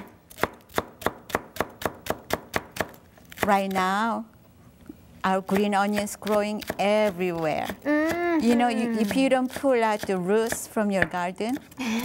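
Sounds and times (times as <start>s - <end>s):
knife chopping on wooden board: 0.0s - 3.9s, 5.5s - 7.8s, 8.4s - 11.7s.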